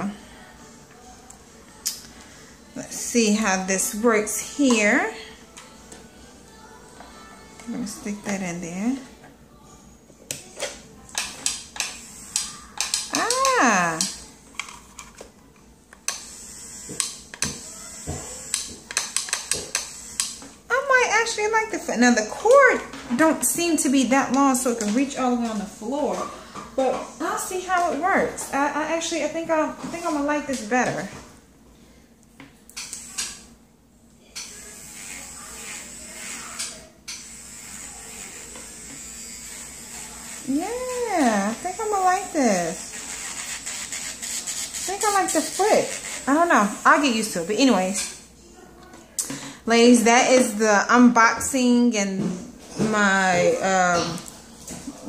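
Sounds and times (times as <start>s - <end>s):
electric nail drill whining: 16.1s - 20.4s, 34.4s - 47.7s.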